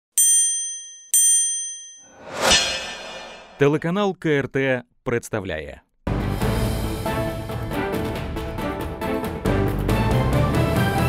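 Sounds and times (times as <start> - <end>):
bright chime dings: 0.2 - 2.1.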